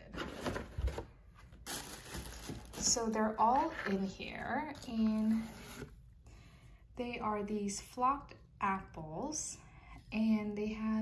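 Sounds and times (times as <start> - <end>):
cardboard rustling and scraping: 0.0 - 4.1, 4.7 - 6.0.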